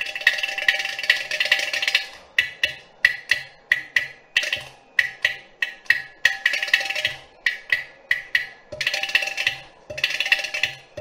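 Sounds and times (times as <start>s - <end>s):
hand percussion strokes: 0.0s - 11.0s.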